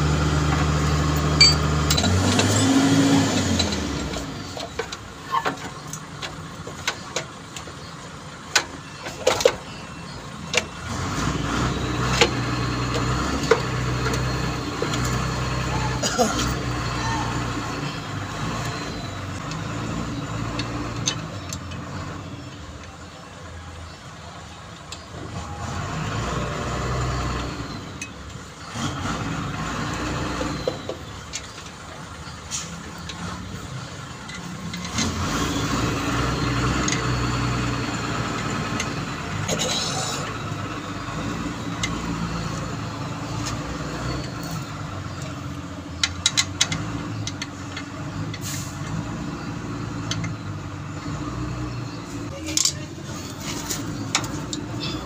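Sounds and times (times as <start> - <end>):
vehicle engine noise: 0.0 - 55.0
sharp metallic clicks: 29.9 - 39.5, 40.2 - 54.8.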